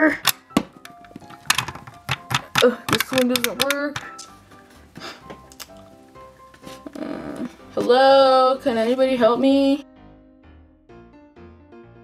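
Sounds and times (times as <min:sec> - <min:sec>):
faint background music: 0:00.0 - 0:10.1
plastic toy clicks and taps: 0:00.2 - 0:04.3.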